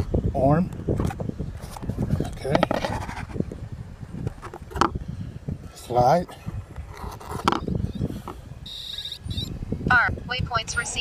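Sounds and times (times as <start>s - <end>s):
wind on microphone: 0.0s - 11.0s
high-pitched electronic beep: 8.7s - 9.5s.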